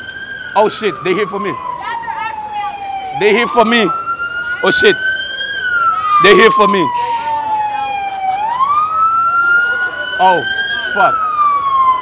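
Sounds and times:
police siren wailing: 0:00.0 - 0:12.0.

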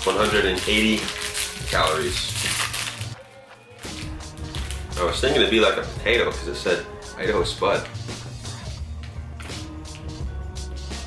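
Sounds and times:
plastic wrapper tearing: 0:00.0 - 0:05.2
background music sustained tones: 0:00.0 - 0:11.0.

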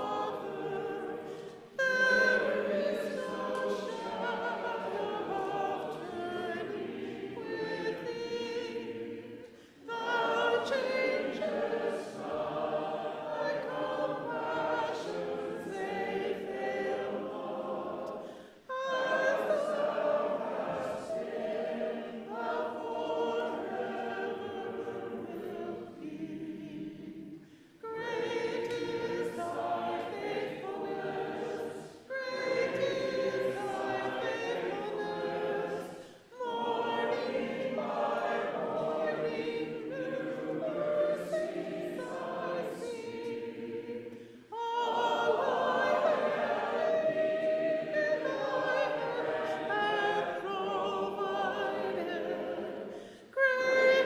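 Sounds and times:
congregation singing a hymn: 0:00.0 - 0:54.0.

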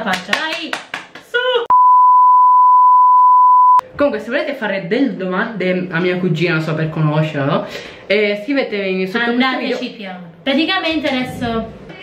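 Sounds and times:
high-pitched test tone beep: 0:01.7 - 0:03.8.

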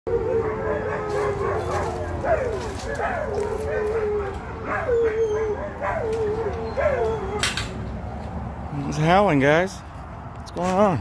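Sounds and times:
puppies howling: 0:00.1 - 0:07.8.

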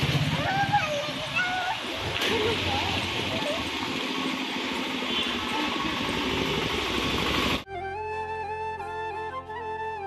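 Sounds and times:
motorbike engines running: 0:00.0 - 0:07.6
street traffic noise: 0:00.0 - 0:07.7.

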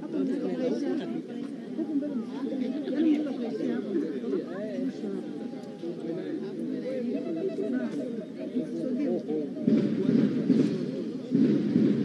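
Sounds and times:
murmur of overlapping conversation: 0:00.0 - 0:12.0.

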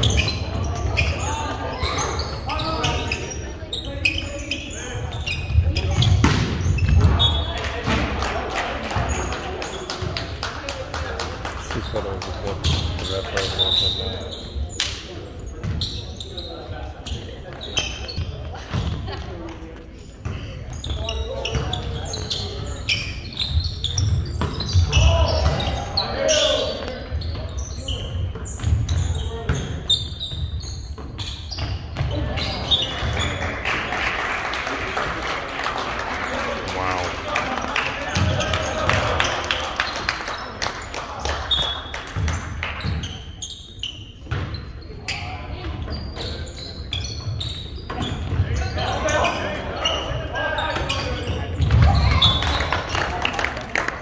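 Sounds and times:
crowd noise: 0:00.0 - 0:54.0
people calling out: 0:36.6 - 0:37.3.

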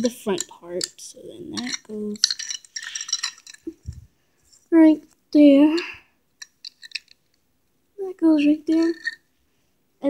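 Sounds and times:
plastic toy pieces clicking: 0:00.0 - 0:03.7.

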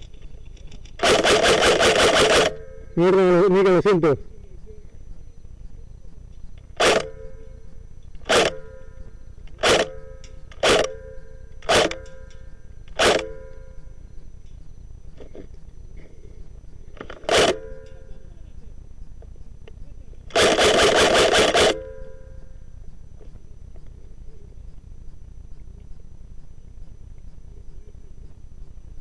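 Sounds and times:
airsoft rifle shots: 0:01.0 - 0:03.4, 0:06.8 - 0:07.5, 0:08.2 - 0:08.9, 0:09.6 - 0:13.6, 0:17.0 - 0:18.0, 0:20.3 - 0:22.1.

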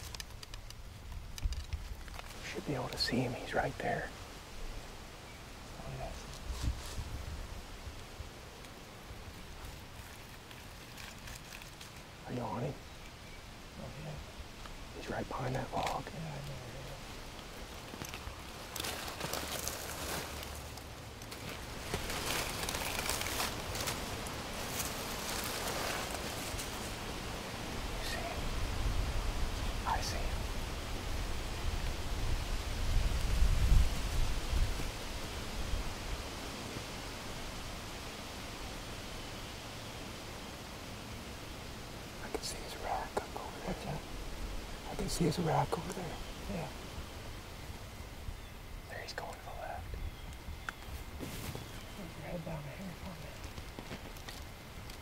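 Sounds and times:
wind rumble on microphone: 0:00.0 - 0:08.4, 0:23.3 - 0:39.1
rustling dry leaves: 0:00.0 - 0:55.0
faint whispering: 0:02.4 - 0:04.2, 0:05.7 - 0:06.4, 0:15.0 - 0:17.1, 0:27.8 - 0:28.7, 0:29.6 - 0:30.6, 0:42.2 - 0:44.1, 0:48.8 - 0:50.0, 0:51.9 - 0:53.5.

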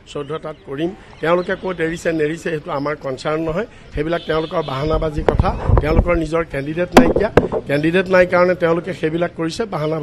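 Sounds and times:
man speaking: 0:06.2 - 0:08.1.

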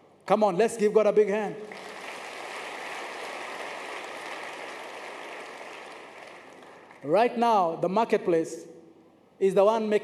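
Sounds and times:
congregation applauding: 0:01.6 - 0:07.2.

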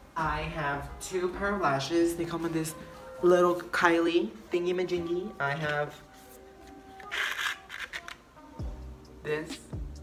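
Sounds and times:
scratchy handling sounds: 0:05.5 - 0:08.2
music with kick-drum beat: 0:08.6 - 0:10.0.

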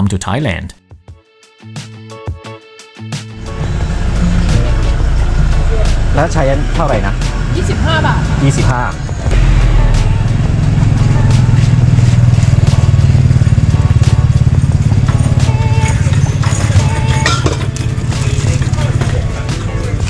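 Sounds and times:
motorcycle engine rumbling: 0:03.4 - 0:20.0.

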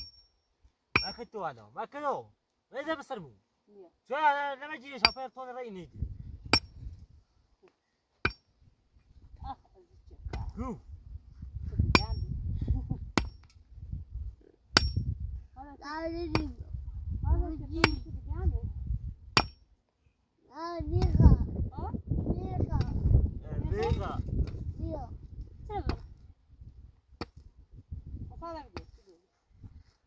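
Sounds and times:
digging tool striking stony ground: 0:00.0 - 0:01.3, 0:05.0 - 0:05.3, 0:06.5 - 0:06.9, 0:08.2 - 0:08.5, 0:11.8 - 0:12.3, 0:13.1 - 0:13.6, 0:14.7 - 0:15.2, 0:19.3 - 0:19.7, 0:23.7 - 0:24.7, 0:25.7 - 0:26.1, 0:27.2 - 0:27.5.

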